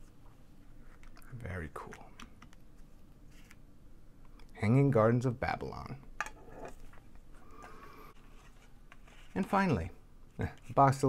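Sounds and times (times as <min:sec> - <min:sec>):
faint rubbing and handling: 0:02.7 - 0:03.6, 0:06.4 - 0:11.0.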